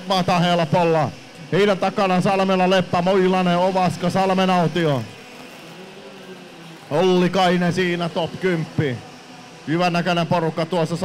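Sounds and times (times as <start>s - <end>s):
faint kart engines droning: 0.0s - 11.0s.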